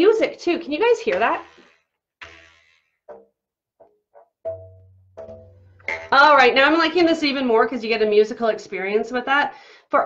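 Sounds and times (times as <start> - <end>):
rubber bands twanging: 0.8 - 8.2.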